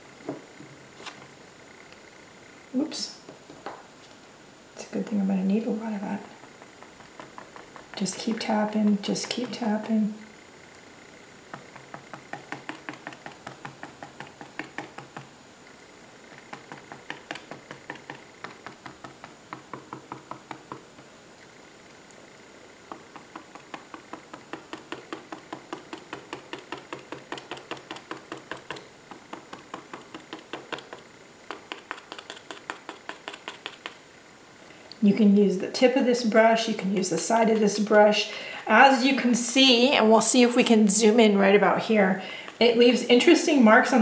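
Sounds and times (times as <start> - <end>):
brush tapping on paper: 6.2 - 10.0, 11.5 - 15.3, 16.3 - 21.1, 22.9 - 34.0.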